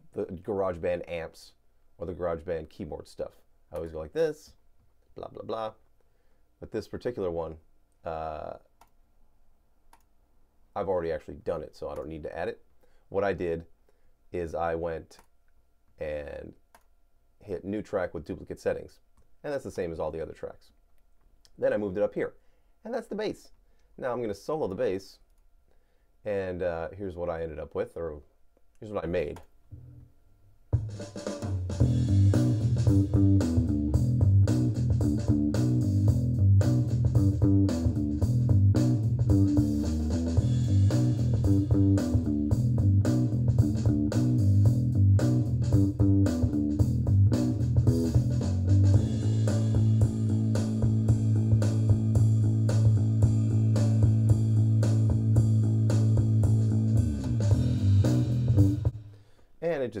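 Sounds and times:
electric bass playing: 30.8 - 59.0.

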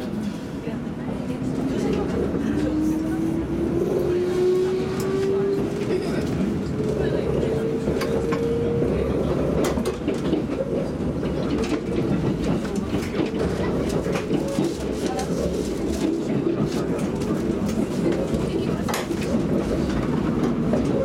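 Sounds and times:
train rumbling: 0.0 - 21.0.

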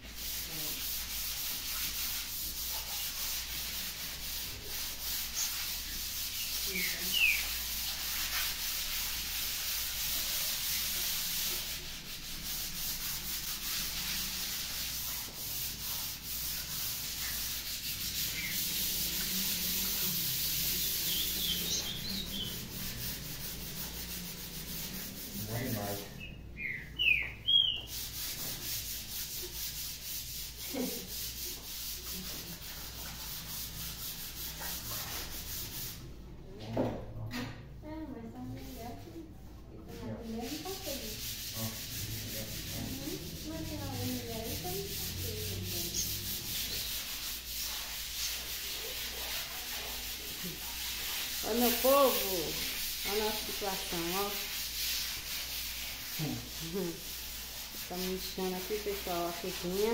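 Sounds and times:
sandpaper rubbing on walls: 0.0 - 36.2, 39.9 - 59.9.

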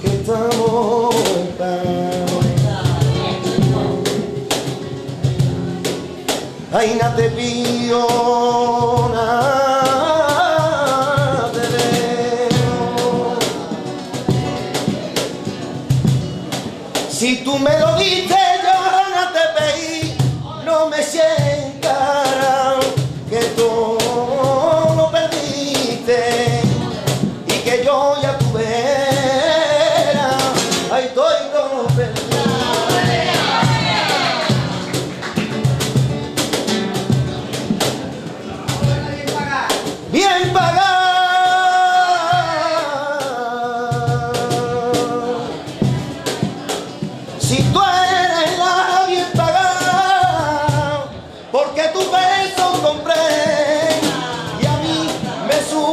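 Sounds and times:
man singing: 0.0 - 4.6, 6.6 - 15.1, 17.0 - 35.0, 38.4 - 55.9
strummed guitar: 0.0 - 55.9.

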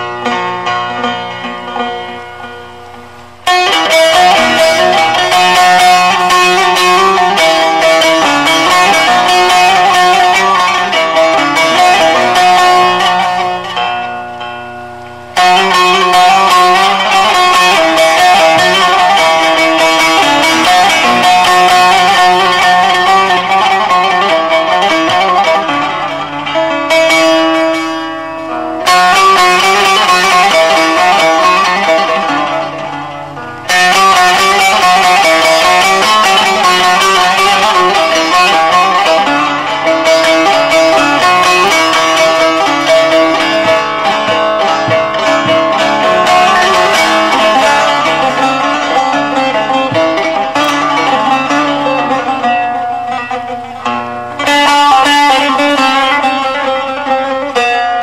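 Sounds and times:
plucked long-necked lute melody: 0.0 - 58.0.

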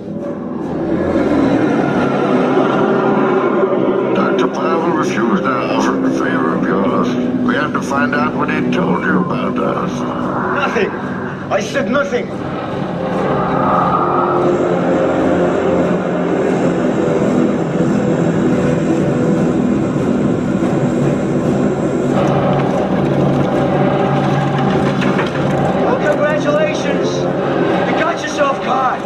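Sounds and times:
propeller aircraft engines droning: 0.0 - 29.0.

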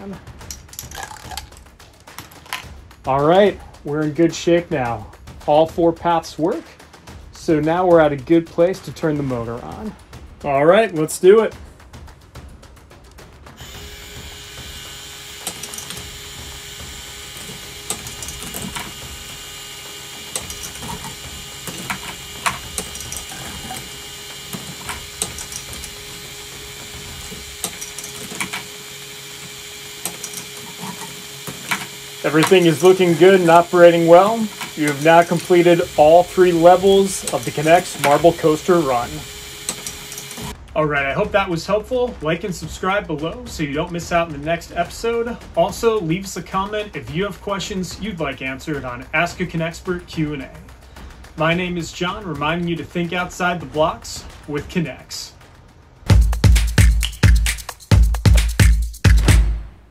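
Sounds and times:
marble clattering down plastic track: 0.4 - 2.7
toy motor running: 0.8 - 1.6, 13.6 - 40.6.

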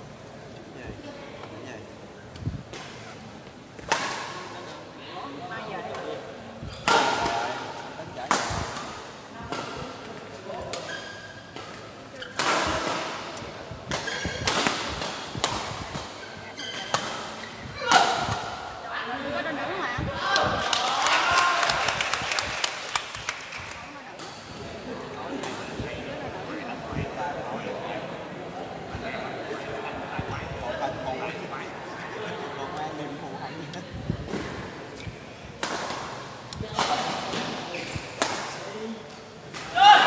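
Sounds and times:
racket hitting shuttlecock: 12.3 - 16.2
people's voices: 17.6 - 40.0.

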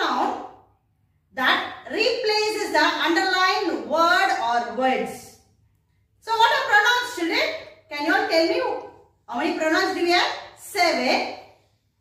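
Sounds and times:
woman speaking: 0.0 - 0.6, 1.3 - 5.5, 6.2 - 11.6.

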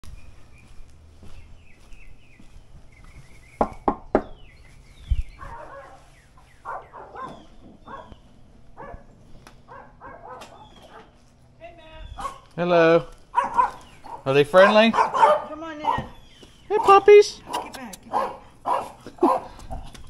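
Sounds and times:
knocks on a door: 3.6 - 4.4.

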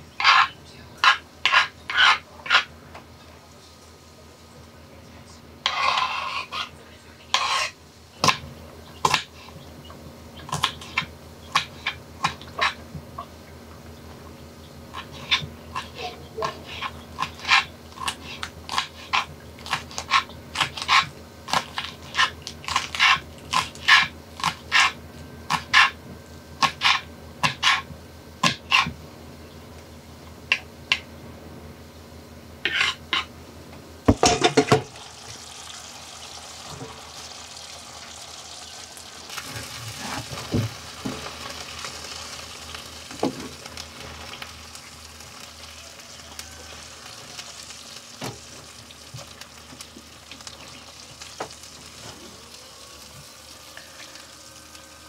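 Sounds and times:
knife chopping on cutting board: 26.6 - 29.0
food sizzling in frying pan: 34.1 - 55.0.

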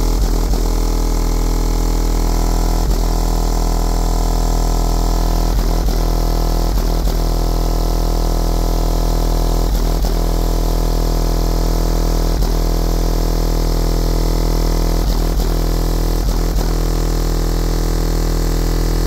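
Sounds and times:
distorted subwoofer bass drone: 0.0 - 19.0.

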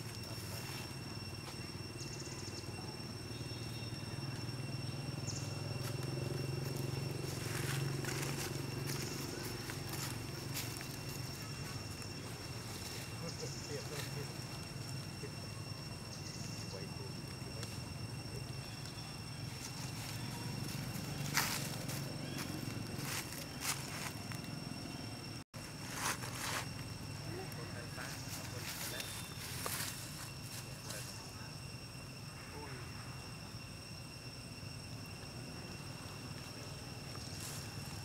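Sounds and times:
steady low hum: 0.0 - 38.0
rustles or crunches: 25.6 - 26.8.

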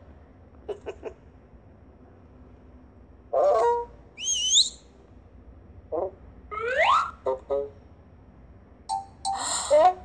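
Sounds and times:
high warbling whistle: 4.2 - 4.8, 6.5 - 7.2
cartoon voice-like sound: 6.0 - 7.8
quick rising pitch glide: 6.5 - 7.2.

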